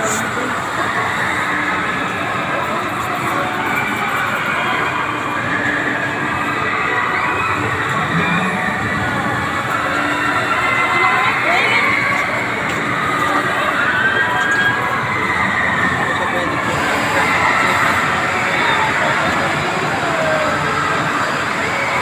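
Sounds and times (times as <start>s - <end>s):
amusement park noise: 0.0s - 22.0s
amusement ride mechanical rumble: 0.0s - 22.0s.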